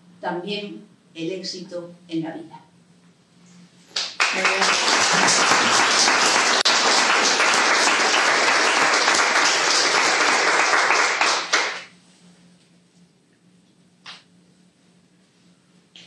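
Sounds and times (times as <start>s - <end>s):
audience applause: 4.0s - 11.9s.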